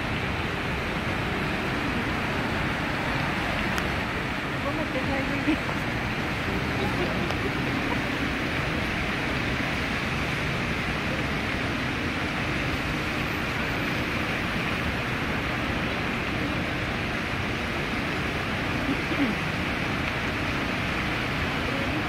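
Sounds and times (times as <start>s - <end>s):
fountain water jets spraying: 0.0s - 22.0s
water falling onto lake: 0.0s - 22.0s.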